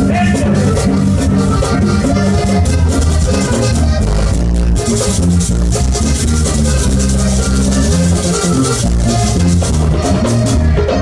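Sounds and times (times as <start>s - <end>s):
button accordion: 0.0s - 11.0s
steady percussion: 0.0s - 11.0s
walking bass line: 0.0s - 11.0s.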